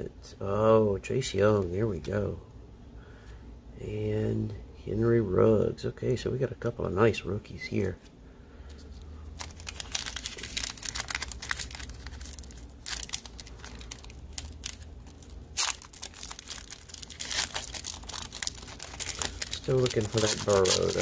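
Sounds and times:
foil wrapper crinkling and tearing: 0:09.3 - 0:21.0.

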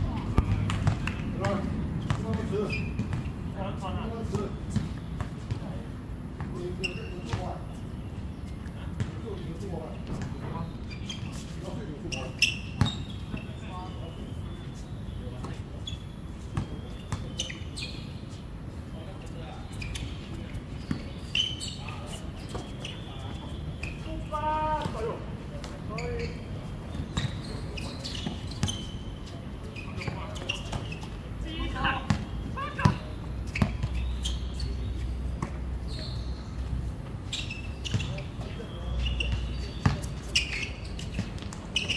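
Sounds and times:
faint players' voices: 0:00.0 - 0:41.9
basketball bouncing on court: 0:00.2 - 0:03.3, 0:32.0 - 0:34.0, 0:37.8 - 0:38.2, 0:39.2 - 0:40.1.

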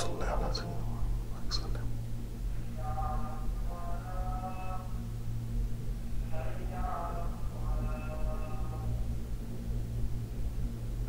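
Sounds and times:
man whispering softly: 0:00.0 - 0:02.0
steady low hum: 0:00.0 - 0:11.0.

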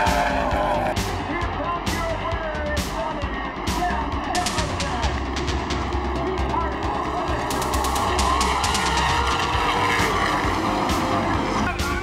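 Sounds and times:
music: 0:00.0 - 0:12.0
race car engines passing: 0:00.0 - 0:12.0.

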